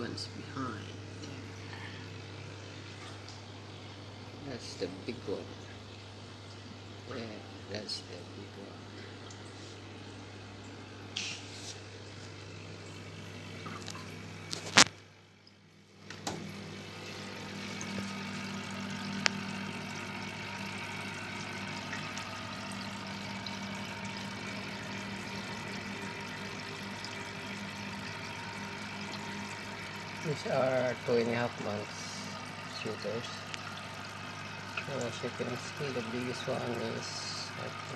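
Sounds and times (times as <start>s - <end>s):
aquarium water bubbling: 0.0s - 37.9s
tank pump humming: 0.0s - 37.9s.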